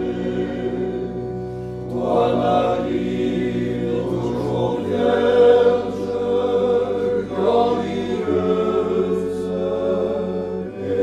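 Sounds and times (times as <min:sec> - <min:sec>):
men's choir chanting: 0:00.0 - 0:11.0.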